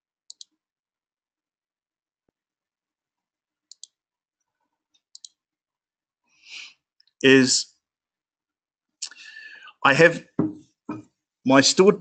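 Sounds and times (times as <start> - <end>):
computer mouse double-clicks: 0.3 - 0.5, 3.7 - 4.0, 5.1 - 5.4.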